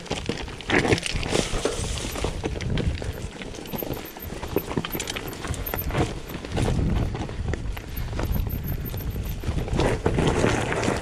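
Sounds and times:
tyres crunching over stones: 0:00.0 - 0:03.7.

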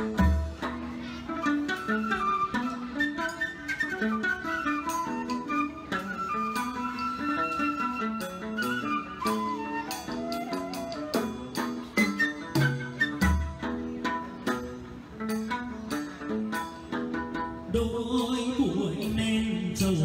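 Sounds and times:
plucked string notes: 0:00.0 - 0:20.0.

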